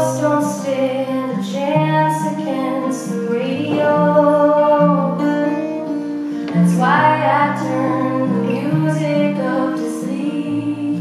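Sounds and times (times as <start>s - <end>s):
acoustic guitar: 0.0s - 11.0s
woman singing: 0.0s - 11.0s.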